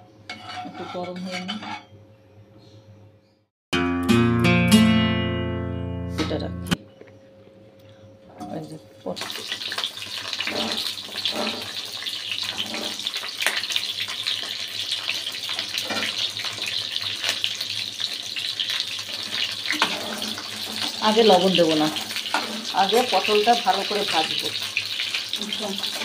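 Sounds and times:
vegetables frying in hot oil: 0:09.1 - 0:26.0.

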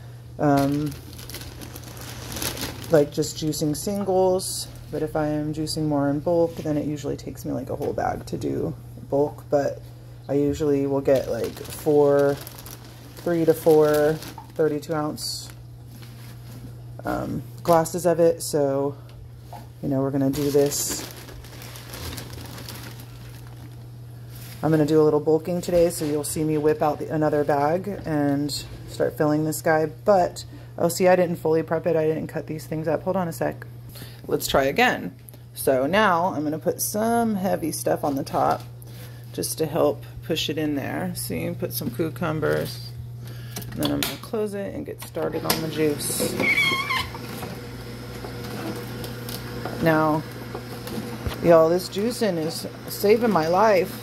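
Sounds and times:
steady low hum: 0:00.0 - 0:54.0
plastic bag crinkling: 0:00.4 - 0:04.0, 0:10.6 - 0:16.7, 0:20.1 - 0:24.6.

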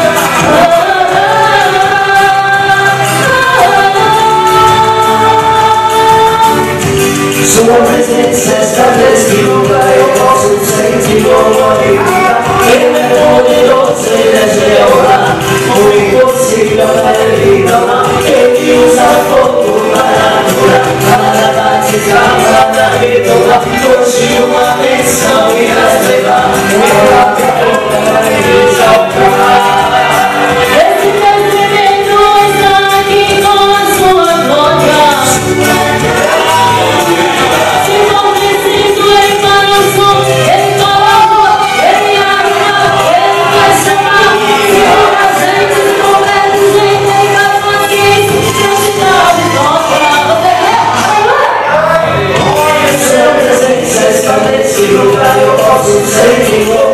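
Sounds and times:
instrumental backing with bass: 0:00.0 - 0:56.9
man and woman singing gospel: 0:00.0 - 0:56.9.

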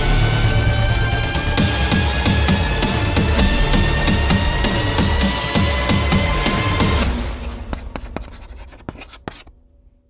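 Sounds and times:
chalk scratching on chalkboard: 0:07.5 - 0:09.5.

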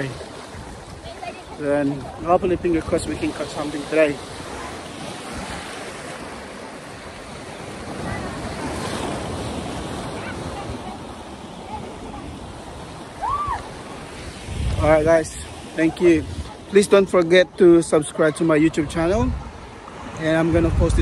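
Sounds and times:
surf washing over rocks: 0:00.0 - 0:21.0.

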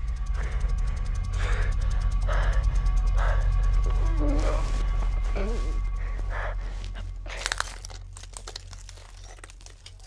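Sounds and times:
low drone: 0:00.0 - 0:10.0.

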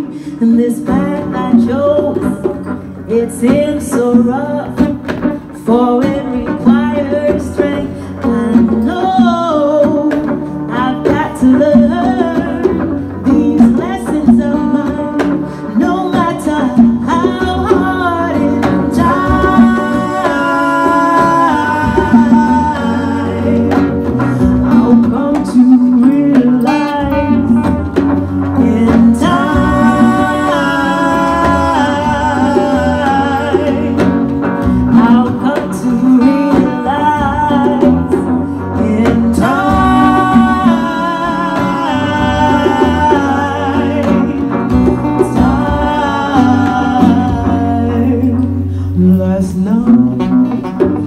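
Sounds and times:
hand drums: 0:00.0 - 0:51.0
strummed acoustic guitar: 0:00.0 - 0:51.0
woman singing: 0:00.0 - 0:51.0.

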